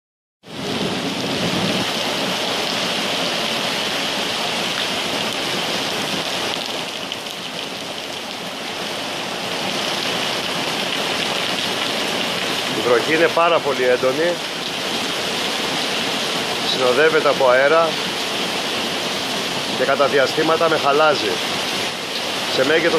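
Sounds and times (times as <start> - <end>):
heavy rain pouring on paving: 0.5 - 22.9.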